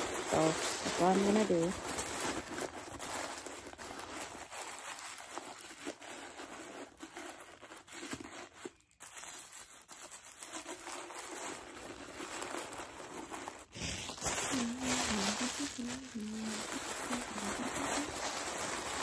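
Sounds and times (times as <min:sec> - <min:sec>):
tissue paper crinkling: 0:00.0 - 0:19.0.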